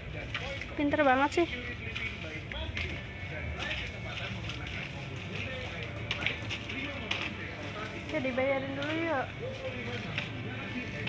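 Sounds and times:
background music: 0.0 - 11.0
faint voices: 0.0 - 11.0.

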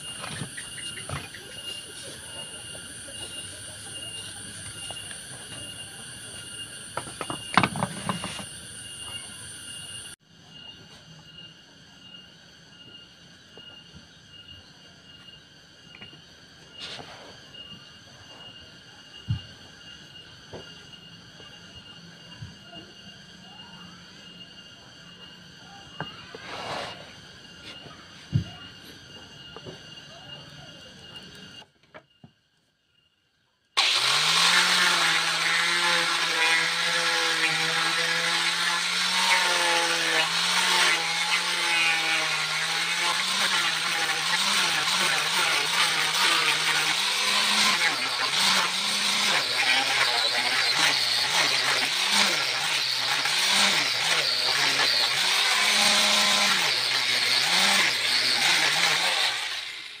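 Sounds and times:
electric sander sanding wood: 0.0 - 10.2, 33.8 - 60.0.

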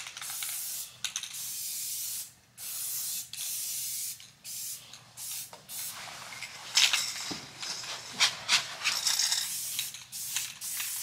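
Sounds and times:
spray paint can hissing: 0.2 - 5.9, 8.8 - 11.0.

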